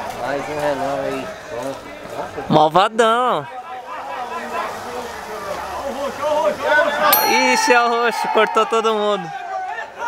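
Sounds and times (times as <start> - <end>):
people talking: 4.0 - 9.3.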